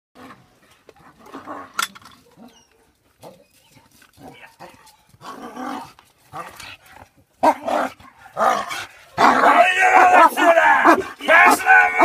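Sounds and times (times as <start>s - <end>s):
dog barking: 9.2s - 11.1s.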